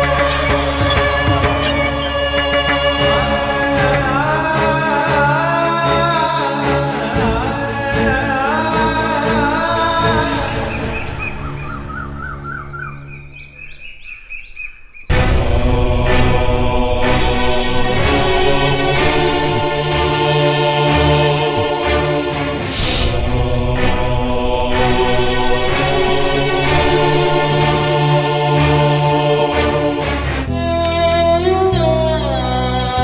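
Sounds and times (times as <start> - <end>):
birds chirping: 0.0 - 3.6, 10.2 - 15.2
choir-like voices: 0.0 - 11.4, 15.1 - 33.0
bass drone: 15.1 - 33.0.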